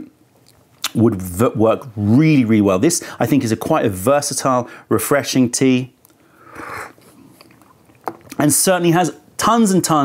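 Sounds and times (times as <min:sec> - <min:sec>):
mouth drawing air: 0:06.4 - 0:07.3.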